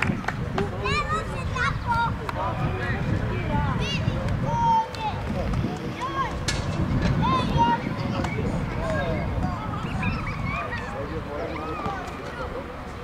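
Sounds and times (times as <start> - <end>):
voices calling out: 0.0 - 13.0.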